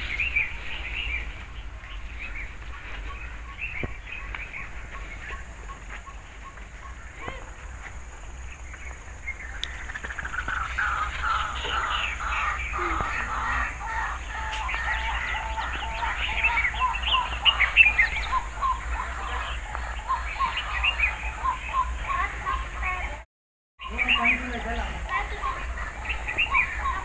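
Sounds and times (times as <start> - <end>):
many birds chirping: 0.0 - 27.0.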